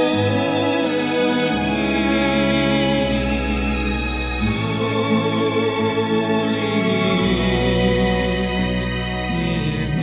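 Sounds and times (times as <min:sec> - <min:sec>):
slow devotional song instrumental: 0:00.0 - 0:10.0.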